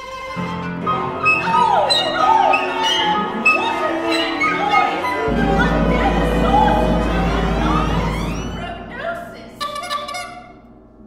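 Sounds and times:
ensemble playing loud music: 0:00.9 - 0:10.4.

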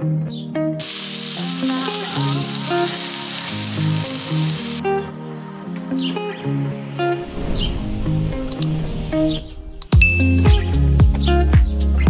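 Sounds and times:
guitar background music: 0:00.0 - 0:12.0
food sizzling in a pan: 0:00.8 - 0:04.8.

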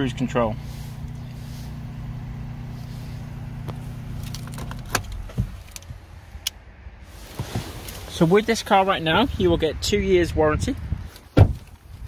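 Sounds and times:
car engine idling: 0:00.0 - 0:09.4
car door opening clicks: 0:03.6 - 0:05.9.

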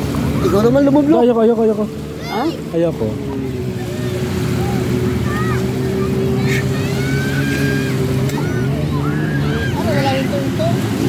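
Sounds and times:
faint voices: 0:00.0 - 0:11.0
jet ski engine droning: 0:00.0 - 0:11.0.

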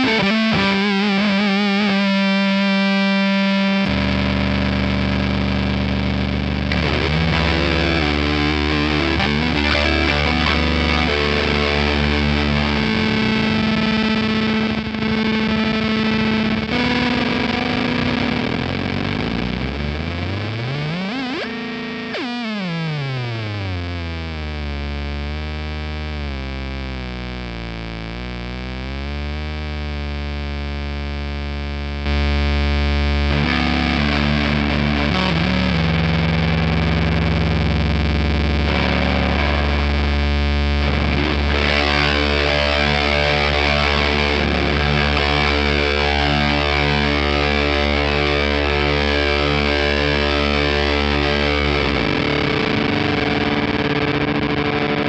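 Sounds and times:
distorted electric guitar: 0:00.0 - 0:55.0.

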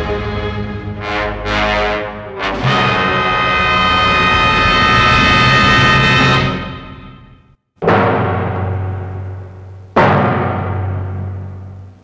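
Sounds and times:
loud brass chord: 0:00.0 - 0:07.4.

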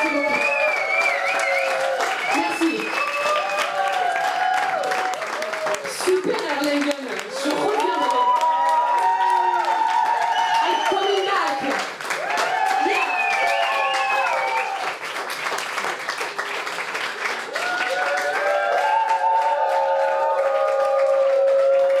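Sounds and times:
audience applauding and cheering: 0:00.0 - 0:22.0.

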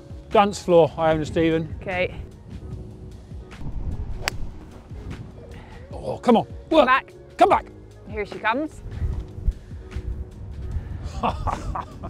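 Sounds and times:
faint background music: 0:00.0 - 0:12.0
golf club striking ball: 0:04.1 - 0:04.8.

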